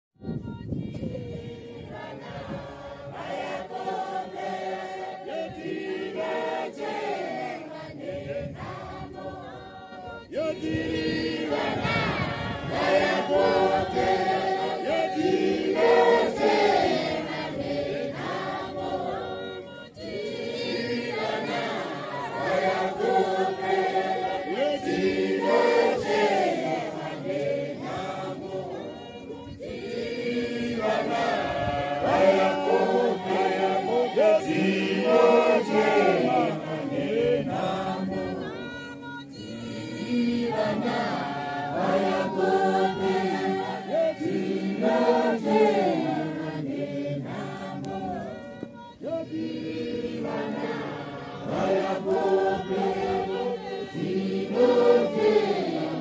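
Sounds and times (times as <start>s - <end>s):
choir singing a hymn unaccompanied: 0.2s - 56.0s.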